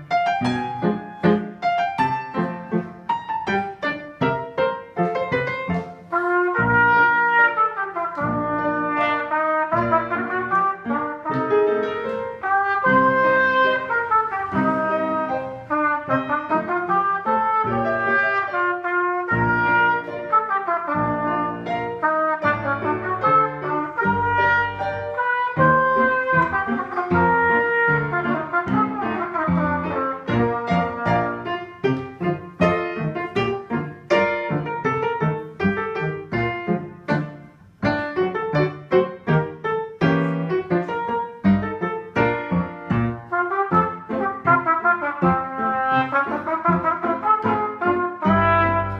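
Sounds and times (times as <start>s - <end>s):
trumpet playing march: 5.5s - 35.2s, 42.2s - 48.9s.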